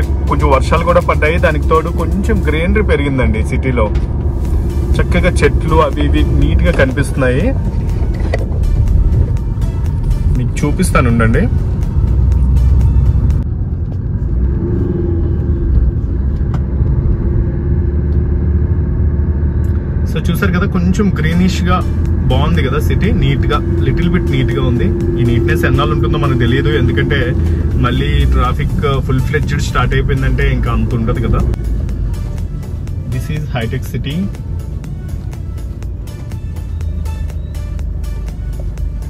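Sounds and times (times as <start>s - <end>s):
music: 0.0s - 14.2s, 20.9s - 39.0s
car engine and road noise: 0.0s - 39.0s.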